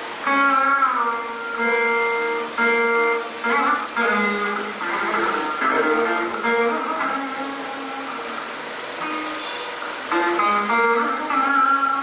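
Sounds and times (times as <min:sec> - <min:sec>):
veena plucked notes: 0:00.0 - 0:12.0.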